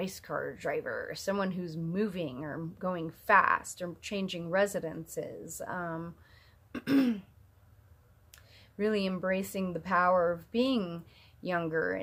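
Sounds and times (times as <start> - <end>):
woman clearing her throat: 6.8 - 7.3.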